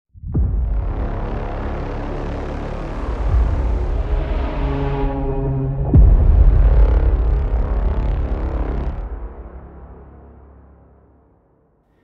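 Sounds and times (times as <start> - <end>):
low hit with pitch bend: 0.2 - 2.1, 3.1 - 9.5
deep rumbling drone: 0.2 - 11.4.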